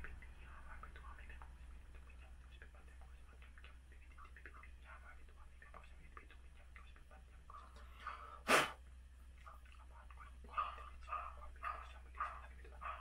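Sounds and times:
soft whispering: 0:00.0 - 0:08.5, 0:09.2 - 0:13.0
sharp burst of breath: 0:08.3 - 0:08.8.

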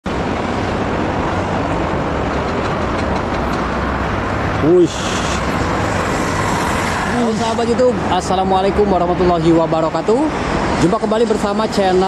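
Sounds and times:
train rushing past: 0:00.1 - 0:12.0.

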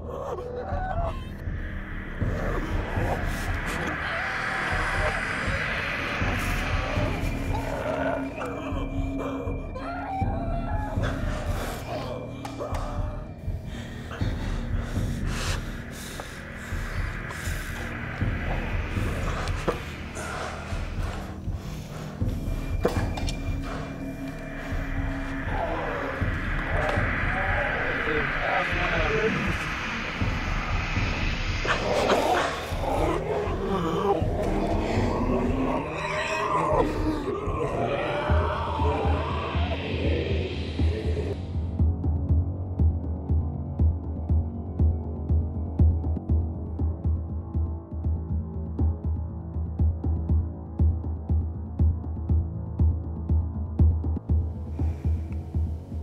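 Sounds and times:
indistinct voice-like sounds: 0:00.0 - 0:14.9, 0:24.5 - 0:41.8
dark droning horror soundtrack: 0:00.0 - 0:56.0.

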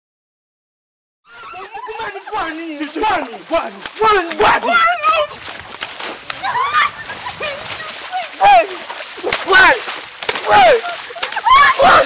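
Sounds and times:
voices yelling: 0:01.3 - 0:12.0
water splashing: 0:01.3 - 0:12.0
high falling cries: 0:06.4 - 0:08.9, 0:09.7 - 0:12.0
sharp smacks: 0:09.2 - 0:10.6.

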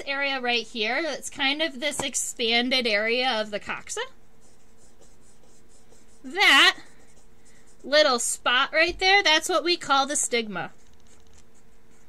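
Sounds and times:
pencil scratching on paper: 0:03.7 - 0:08.4, 0:10.2 - 0:12.0.

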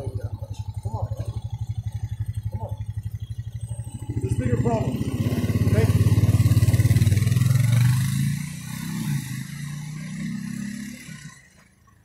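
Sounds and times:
engine running with low pulsing: 0:00.0 - 0:12.0.

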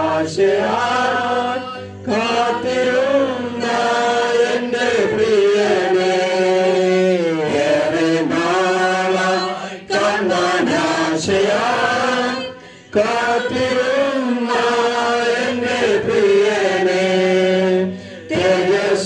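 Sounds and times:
voices chanting a hymn: 0:00.0 - 0:19.0.

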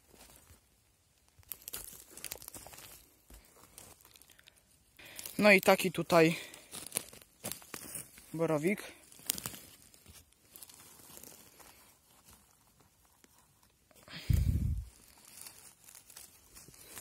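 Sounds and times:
rustling of pine needles and twigs: 0:00.0 - 0:17.0.

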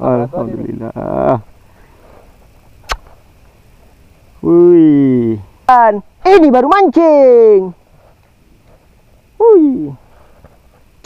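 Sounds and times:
sharp click: 0:02.8 - 0:03.1.

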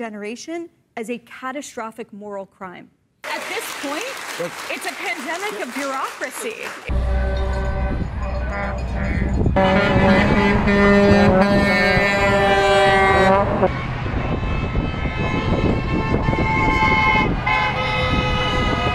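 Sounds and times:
traffic rumble: 0:03.4 - 0:18.9
vehicle horns honking: 0:06.9 - 0:18.9.

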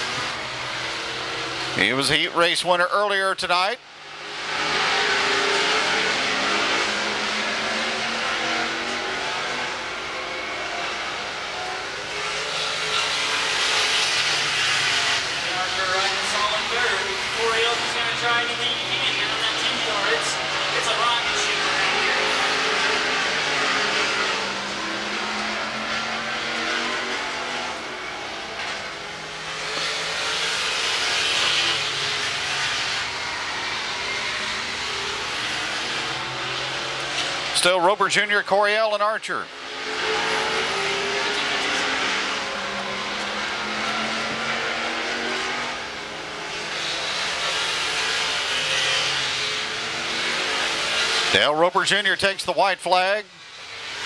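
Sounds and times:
race car engines at speed: 0:00.0 - 0:54.0.

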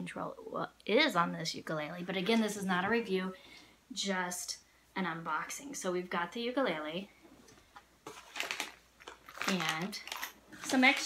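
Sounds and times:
plastic bag crinkling: 0:08.0 - 0:11.0.

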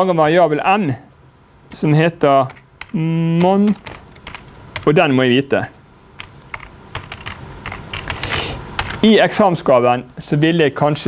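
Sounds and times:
typing on a keyboard: 0:02.4 - 0:04.9, 0:06.2 - 0:09.0.

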